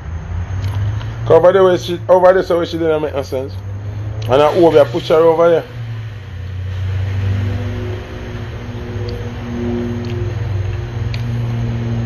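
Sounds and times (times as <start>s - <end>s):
low mechanical hum: 3.3s - 12.0s.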